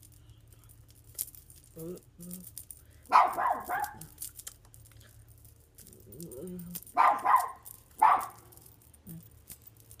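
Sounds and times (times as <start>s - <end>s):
dog barking: 3.1s - 4.1s, 7.0s - 8.4s.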